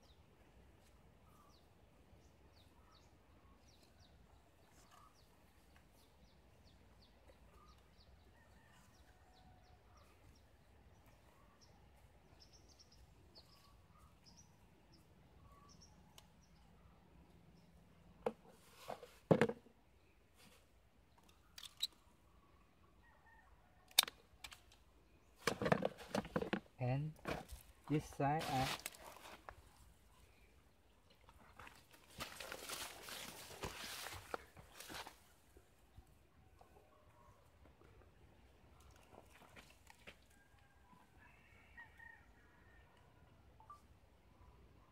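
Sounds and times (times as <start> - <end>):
small birds chirping: 1.2 - 18.1.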